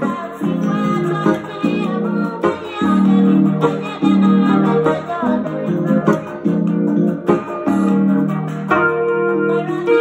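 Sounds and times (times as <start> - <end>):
keyboard playing held chords: 0.0 - 10.0.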